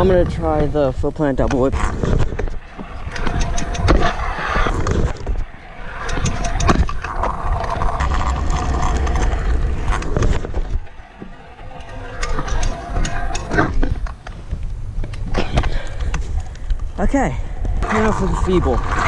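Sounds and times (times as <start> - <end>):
scooter deck rattling: 0.0 - 16.5
scooter wheels rumbling on asphalt: 0.0 - 19.0.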